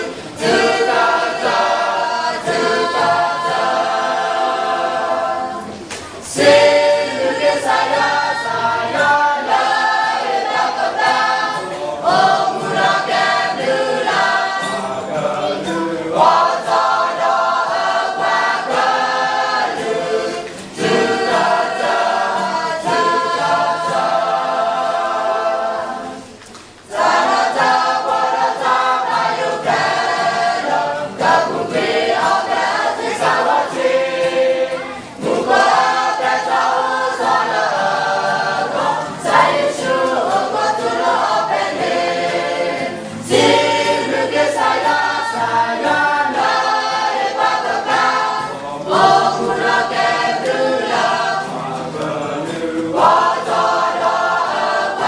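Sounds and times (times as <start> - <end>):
choir singing: 0.0 - 55.0.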